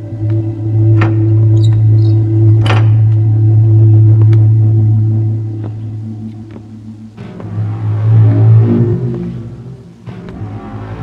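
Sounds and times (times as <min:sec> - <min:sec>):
low drone: 0:00.0 - 0:11.0.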